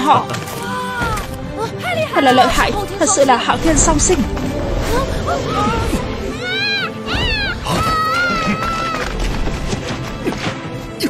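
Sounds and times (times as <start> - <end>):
background music: 0.0 - 11.0
monster screech: 4.6 - 9.1.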